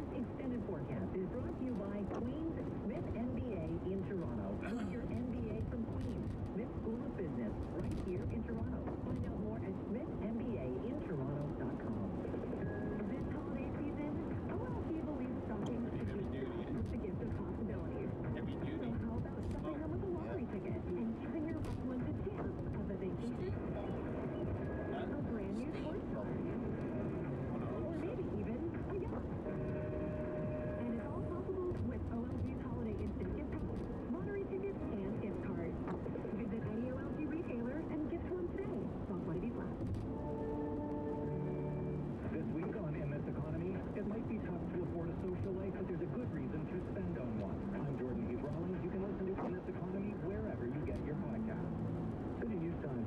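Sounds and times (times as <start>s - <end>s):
muffled radio talk: 0.0s - 53.0s
music on car radio: 0.0s - 53.0s
road and tyre noise inside car: 0.0s - 53.0s.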